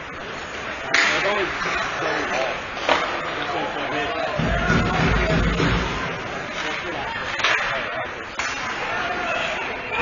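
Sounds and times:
indistinct crowd voices: 0.0s - 10.0s
hockey stick sharp crack: 0.9s - 1.3s, 8.4s - 8.8s.

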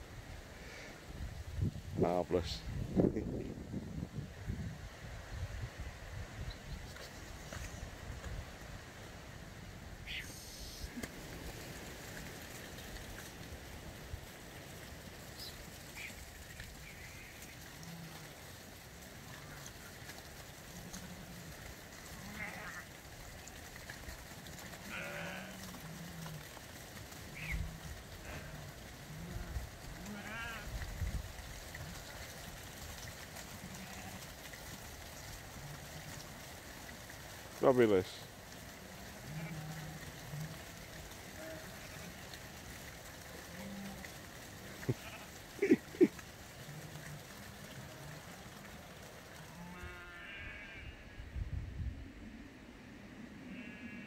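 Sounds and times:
sheep bleating: 24.8s - 25.9s, 28.2s - 30.7s, 39.1s - 40.4s, 49.5s - 51.1s, 53.5s - 54.0s.

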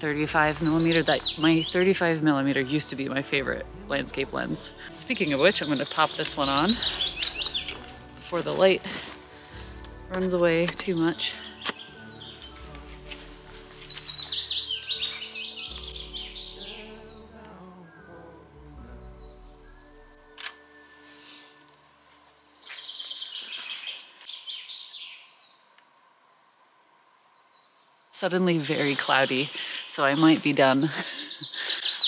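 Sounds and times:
songbirds singing: 0.0s - 20.5s, 21.1s - 32.0s
soft background music: 0.0s - 32.0s
camera shutter click: 20.3s - 20.6s.

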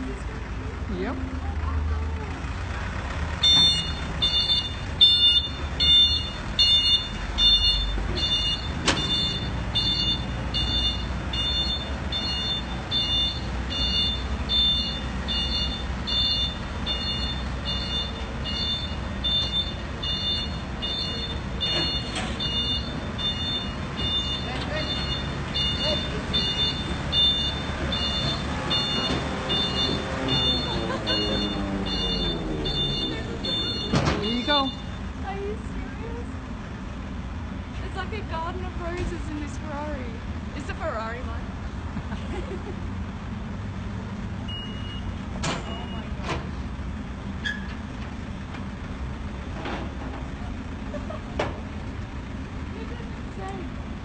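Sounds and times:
truck engine running: 0.0s - 54.0s
truck warning beeper: 3.4s - 35.2s, 44.4s - 46.4s.

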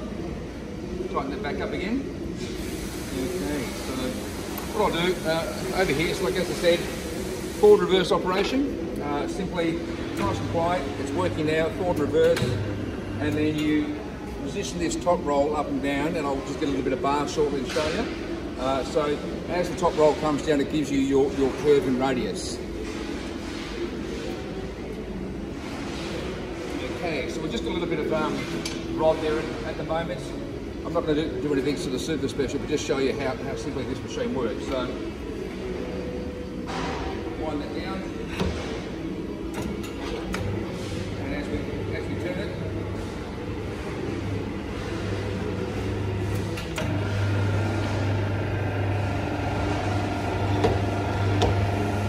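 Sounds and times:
electric motor and gearbox humming: 37.6s - 52.0s
electric motor humming: 45.0s - 52.0s.

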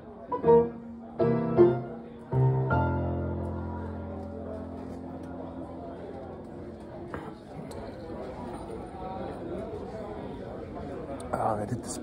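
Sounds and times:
murmur of conversation: 0.0s - 12.0s.

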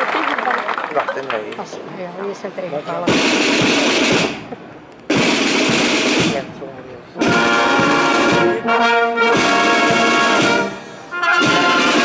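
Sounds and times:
snare drum rolls: 3.0s - 6.5s, 9.3s - 10.7s, 11.3s - 12.0s
brass chord: 7.2s - 12.0s.

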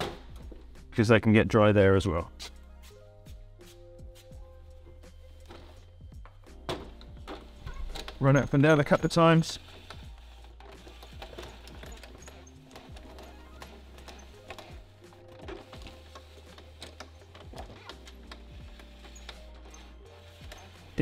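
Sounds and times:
quiet background music: 0.0s - 21.0s
window regulator clicks and rattles: 6.6s - 21.0s.

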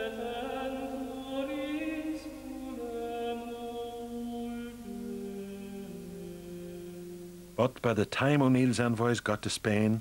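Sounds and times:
slow sung chant: 0.0s - 8.6s.

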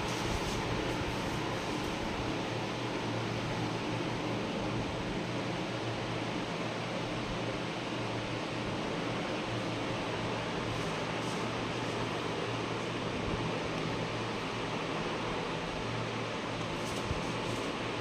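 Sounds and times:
steady hiss: 0.0s - 18.0s.

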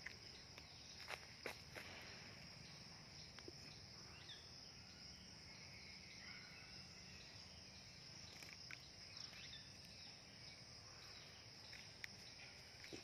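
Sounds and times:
high-pitched insect chorus: 0.0s - 13.0s.

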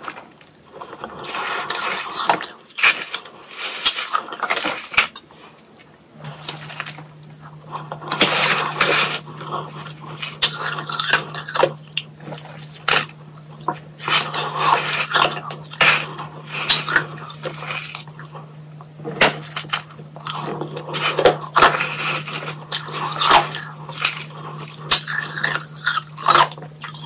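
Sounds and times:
ice being chewed: 0.0s - 27.0s
plastic spoon scraping shaved ice: 0.8s - 5.6s, 6.2s - 18.4s, 19.2s - 27.0s.

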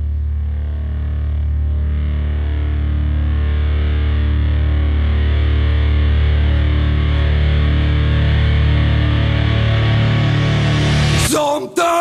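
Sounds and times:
distorted electric guitar droning chord: 0.0s - 11.3s.

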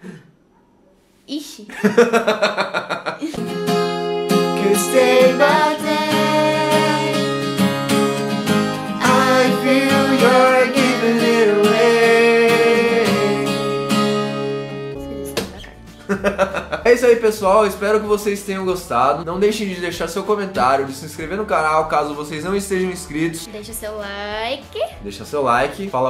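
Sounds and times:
strummed acoustic guitar: 3.4s - 18.2s
man and girl singing: 4.5s - 7.4s, 9.0s - 13.8s.

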